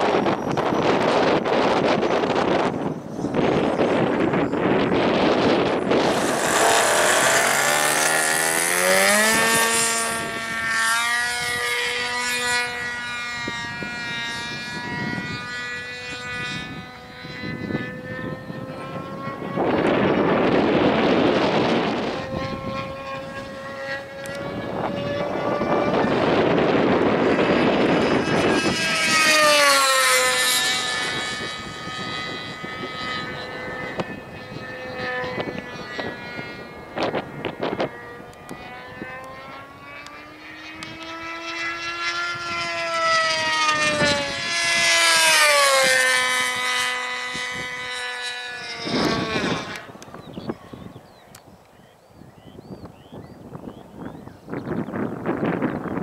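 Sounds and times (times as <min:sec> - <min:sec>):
model airplane propeller whine: 0:00.0 - 0:56.0.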